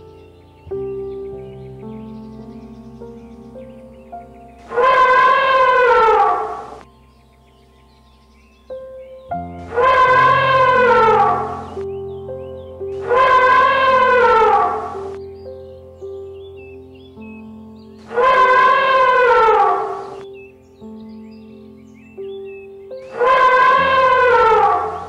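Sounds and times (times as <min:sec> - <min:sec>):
background music: 0:00.0 - 0:25.0
elephant trumpeting: 0:04.7 - 0:06.8, 0:09.7 - 0:11.8, 0:13.0 - 0:15.1, 0:18.1 - 0:20.2, 0:23.1 - 0:25.0.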